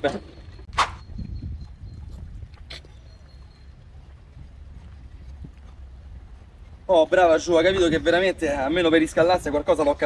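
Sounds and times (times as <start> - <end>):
sharp click: 0.7 - 1.1.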